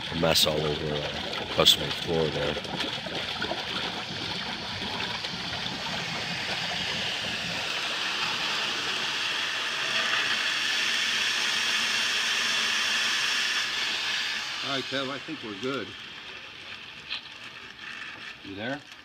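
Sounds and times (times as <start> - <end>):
high-pressure water hissing in pipe: 0.0 - 17.0.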